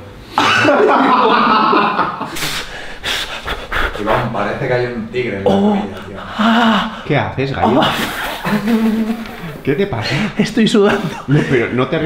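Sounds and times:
man panting in pain: 2.5 - 4.1, 6.2 - 7.1.

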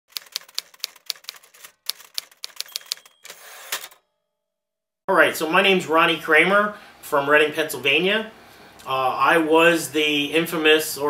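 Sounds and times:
typewriter keystrokes: 0.1 - 4.0.

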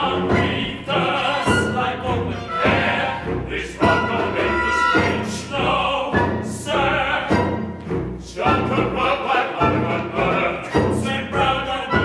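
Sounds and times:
male opera chorus singing: 0.0 - 7.6, 8.2 - 12.0.

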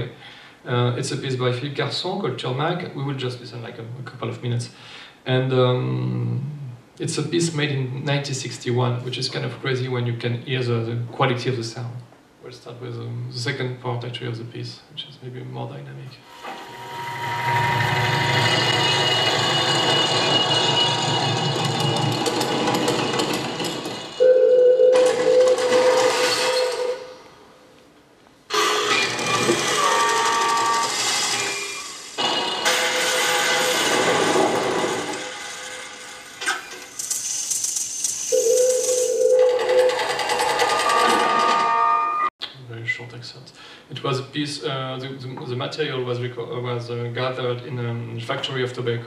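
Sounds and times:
mechanical clatter and whirring: 16.4 - 24.2, 28.9 - 42.0.

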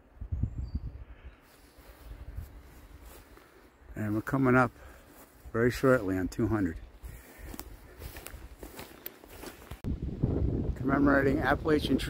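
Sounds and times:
footsteps on grass: 1.4 - 9.9.

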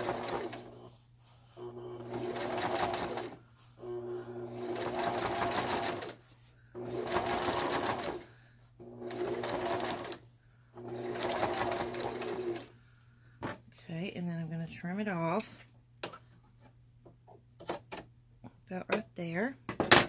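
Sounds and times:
sewing machine stitching: 0.0 - 1.0, 1.6 - 6.2, 6.8 - 10.2, 10.8 - 12.7.

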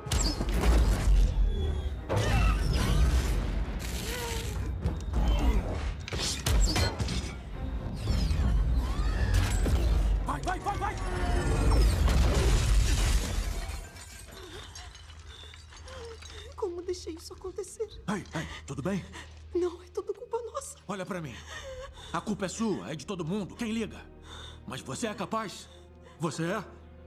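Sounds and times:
film music: 0.0 - 27.0
shattering debris: 10.8 - 16.6.

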